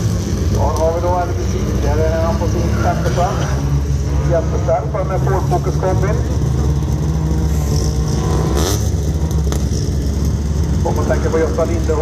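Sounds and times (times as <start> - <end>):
race car engines revving: 0.0 - 12.0.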